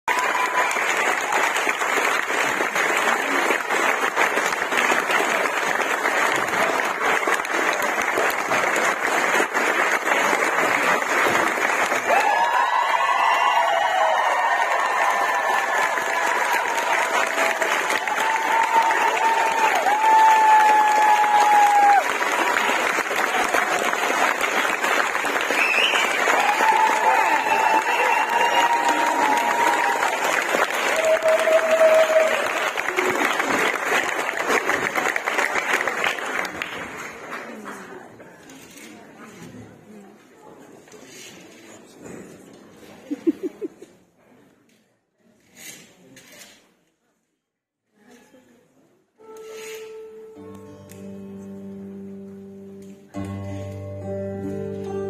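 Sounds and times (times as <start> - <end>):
audience applauding: 0.0 - 38.3.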